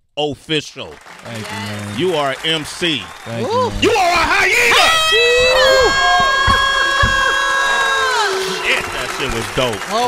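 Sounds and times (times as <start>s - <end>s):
soft knocks: 5.4s - 7.5s.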